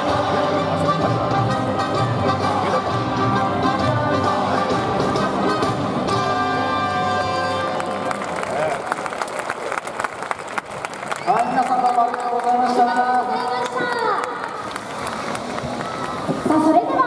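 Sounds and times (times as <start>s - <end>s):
crowd clapping: 7.6s - 16.6s.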